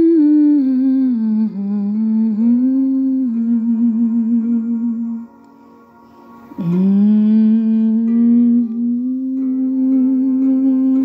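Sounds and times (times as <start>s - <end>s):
soft instrumental accompaniment: 0.0s - 11.0s.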